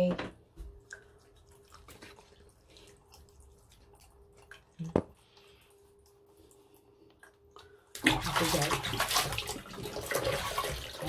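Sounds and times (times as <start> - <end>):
tap water running and splashing: 0.5 - 5.2, 7.2 - 11.0.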